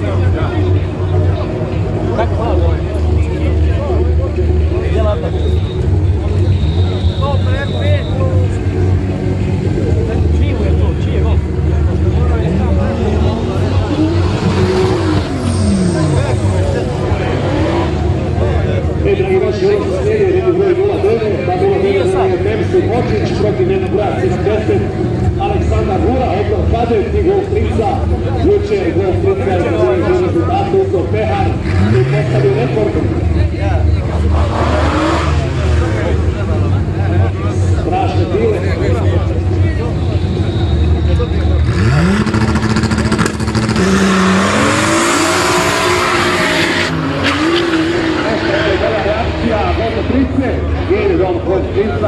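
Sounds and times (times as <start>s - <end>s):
race car engines revving: 0.0s - 52.0s.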